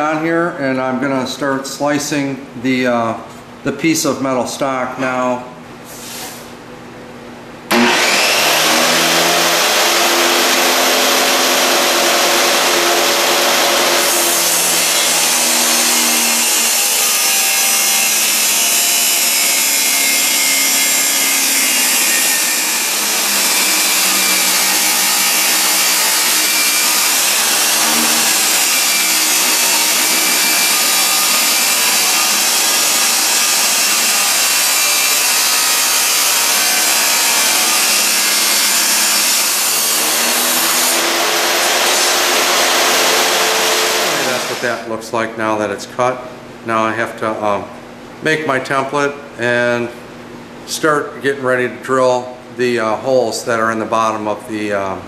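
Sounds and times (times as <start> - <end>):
saw motor humming: 7.7 - 44.8
abrasive disc grinding metal: 20.0 - 44.7.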